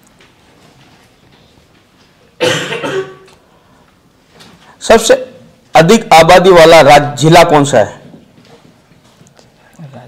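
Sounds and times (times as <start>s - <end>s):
person coughing: 2.4s - 3.4s.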